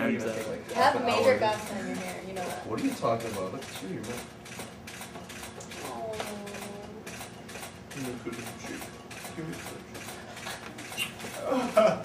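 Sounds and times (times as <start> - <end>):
rapid mechanical clicks: 2.0 - 11.4.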